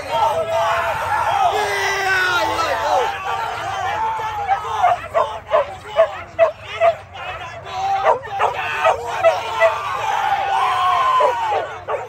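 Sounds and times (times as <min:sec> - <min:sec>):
crowd voices and shouts: 0:00.0 - 0:12.0
dogs barking and yelping: 0:04.7 - 0:07.1, 0:07.9 - 0:10.3, 0:11.0 - 0:12.0.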